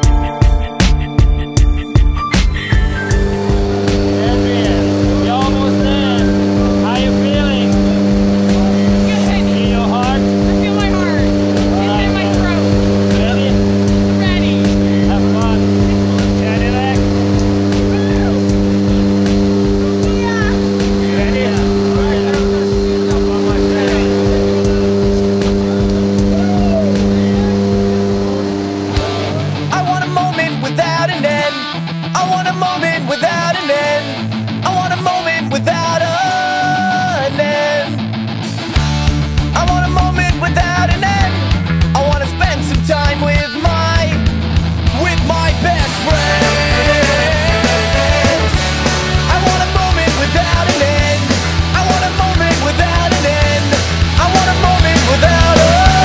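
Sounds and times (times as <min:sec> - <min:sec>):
plane engine and propeller drone: 0:02.4 - 0:29.7
people's voices: 0:02.4 - 0:38.0, 0:39.6 - 0:44.2, 0:44.9 - 0:56.0.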